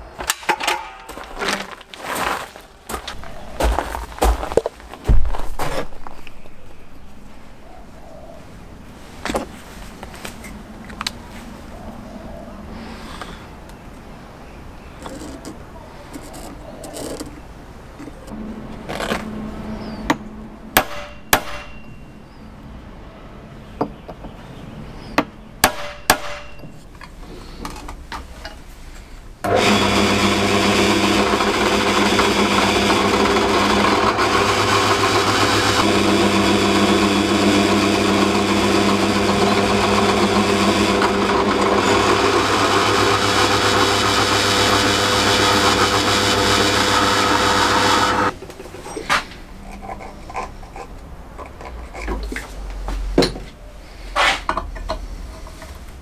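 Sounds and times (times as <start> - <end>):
drill press motor humming: 29.5 - 48.3.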